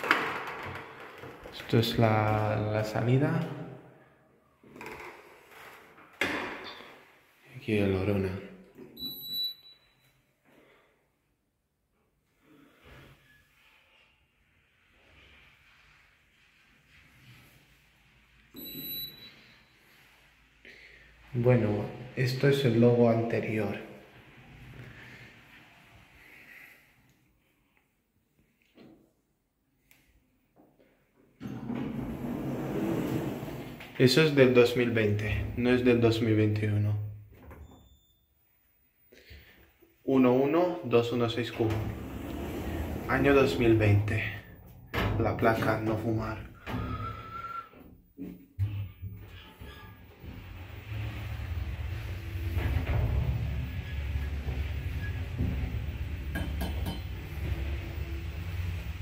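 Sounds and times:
lift call button beep: 9.0s - 10.0s, 18.6s - 19.4s
faint short high beep: 18.6s - 19.6s.

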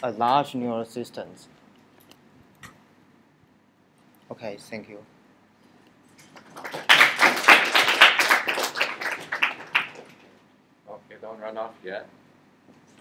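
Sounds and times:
audience applauding: 6.2s - 10.2s.

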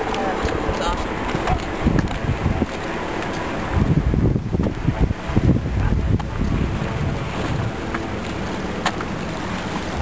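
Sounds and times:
sea waves: 0.0s - 10.0s
wind rumbling on microphone: 0.0s - 10.0s.

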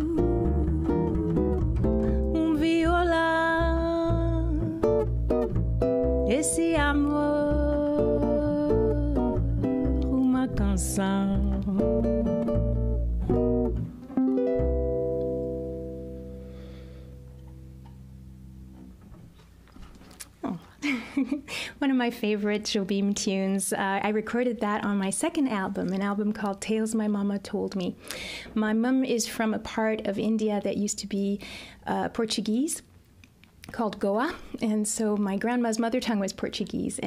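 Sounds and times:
ukulele: 0.0s - 19.3s
upright double bass: 0.0s - 19.4s.

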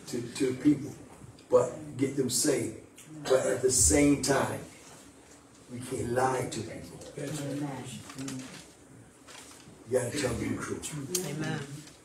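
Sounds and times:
man speaking: 0.0s - 4.7s, 5.7s - 7.6s, 9.9s - 11.1s.

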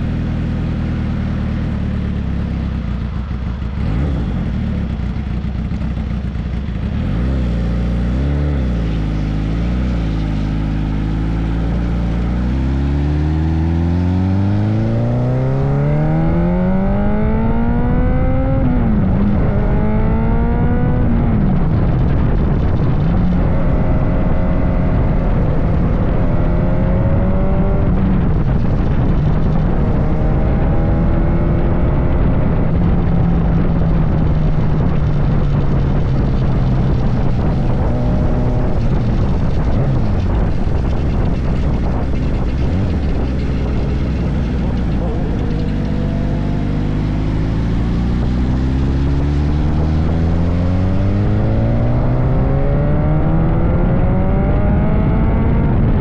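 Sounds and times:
motorcycle engines revving: 0.0s - 56.0s
wind on microphone: 7.0s - 56.0s.

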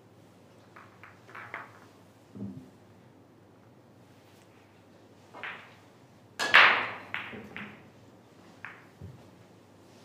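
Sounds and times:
billiard balls clicking: 0.5s - 2.7s, 5.3s - 9.2s.

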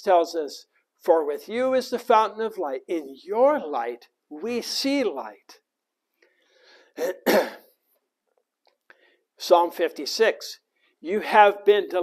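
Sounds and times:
man clearing his throat: 7.0s - 7.8s.

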